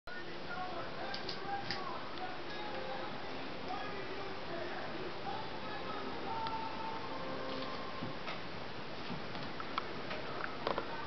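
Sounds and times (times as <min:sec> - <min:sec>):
steady background hiss: 0:00.1 - 0:11.0.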